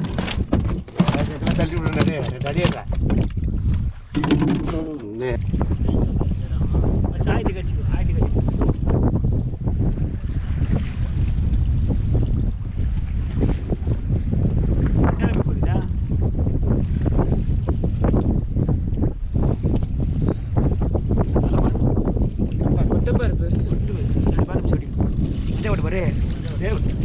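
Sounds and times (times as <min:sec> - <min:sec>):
knocks and clicks from boat: 0:00.0 - 0:07.0, 0:08.2 - 0:09.1, 0:09.7 - 0:15.8, 0:17.0 - 0:22.9
sea washing against hull: 0:00.0 - 0:27.0
wind buffeting microphone: 0:00.0 - 0:27.0.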